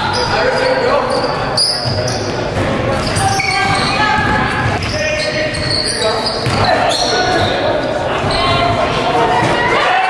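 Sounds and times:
sneakers squeaking: 0.0 - 9.8
echoing voices: 0.0 - 10.0
basketball bouncing: 1.8 - 5.7, 6.4 - 7.5.

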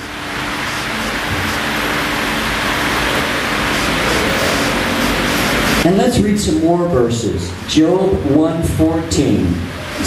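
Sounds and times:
steady rushing noise: 0.0 - 10.0.

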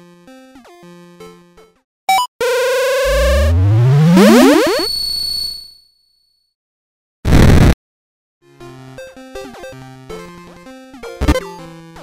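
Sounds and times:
synthesizer blip: 2.9 - 4.9
rising electronic tone sweep: 3.1 - 4.9.

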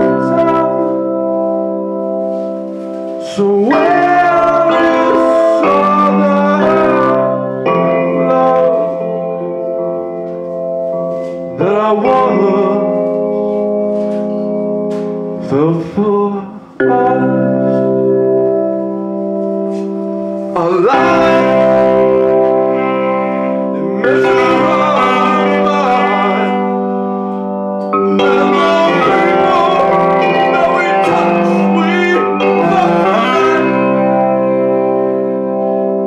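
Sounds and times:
saxophone phrases: 0.0 - 1.2, 19.7 - 35.4
electronic keyboard chords: 0.0 - 36.0.

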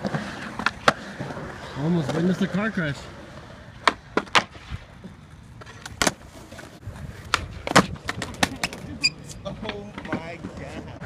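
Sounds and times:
skateboard clacking on ground: 0.0 - 2.6, 3.8 - 11.0
skateboard wheels rolling on concrete: 0.0 - 11.0.

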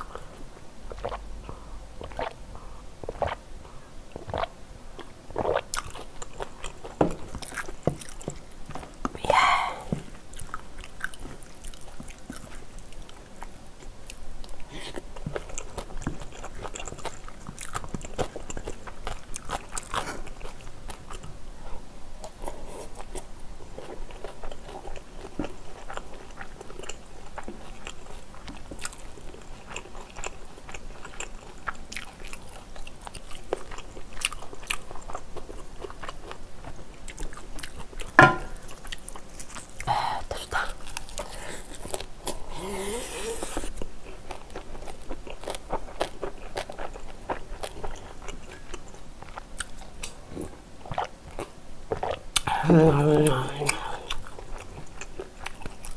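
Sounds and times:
close chewing and biting: 0.0 - 55.9.

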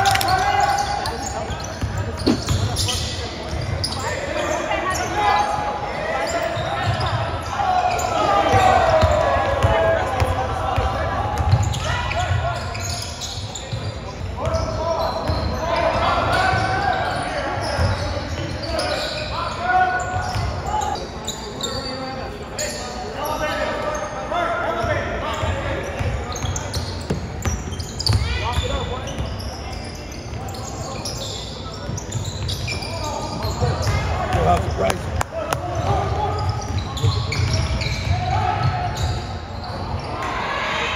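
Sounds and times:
people calling and talking: 0.0 - 40.9.

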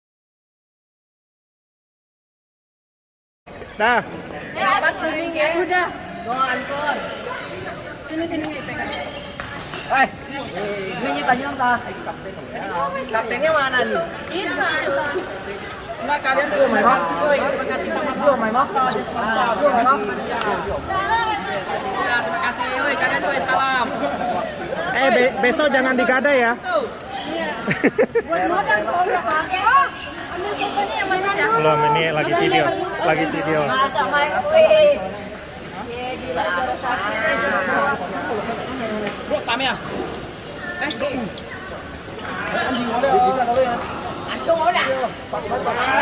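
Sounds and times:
people chattering: 3.5 - 46.0.

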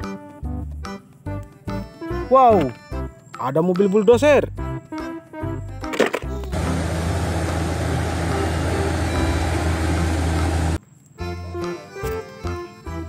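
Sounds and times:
background music: 0.0 - 13.0
engine-like rumble: 6.3 - 10.8.

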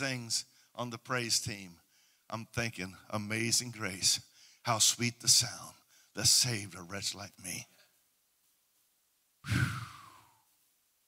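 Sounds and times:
man sighing into microphone: 9.4 - 10.5.

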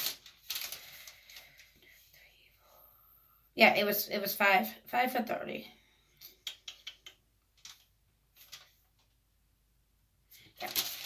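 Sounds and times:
faint whispering: 1.3 - 3.6.

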